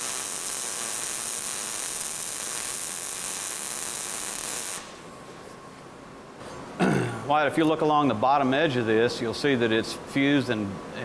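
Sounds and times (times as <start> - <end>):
welding arc: 0.0 - 5.1.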